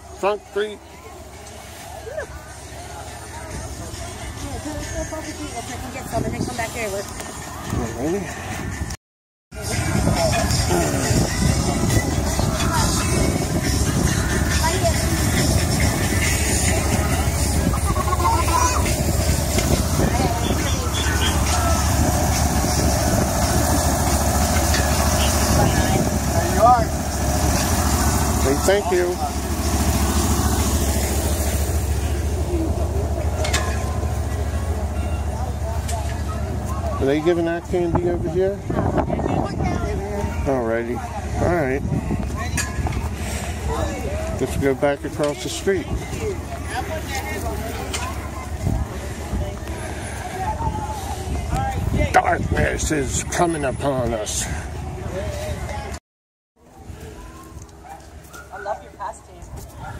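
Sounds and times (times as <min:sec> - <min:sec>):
distant chatter of people: 0:00.0 - 0:08.8, 0:09.5 - 0:56.0, 0:56.6 - 0:59.9
steady low rumble: 0:09.6 - 0:56.0
fire truck engine idling: 0:14.0 - 0:37.7.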